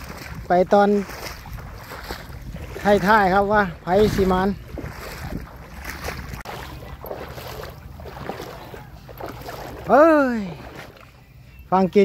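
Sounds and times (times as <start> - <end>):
wind on microphone: 0.0 - 9.9
footsteps sloshing through water: 0.0 - 12.0.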